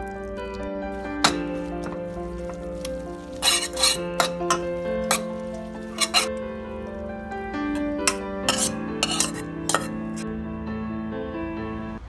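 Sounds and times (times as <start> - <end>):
spatula scraping and stirring: 0.0 - 6.4, 7.7 - 10.2
background music with held notes: 0.0 - 12.0
metal spatula clinking on pot: 1.2 - 6.4, 7.7 - 10.2.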